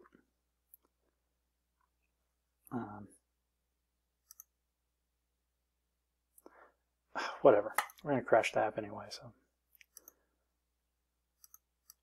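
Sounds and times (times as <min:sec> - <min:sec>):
computer mouse clicks: 0:04.2 - 0:04.6, 0:09.7 - 0:10.2, 0:11.4 - 0:12.0.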